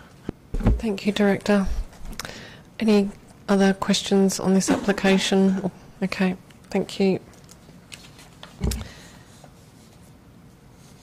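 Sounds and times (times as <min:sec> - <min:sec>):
paper rustling: 0:07.4 - 0:08.8.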